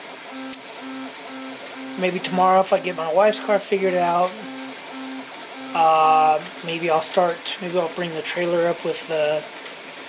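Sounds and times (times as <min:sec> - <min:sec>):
stepper motor tones: 0:00.0 - 0:08.0.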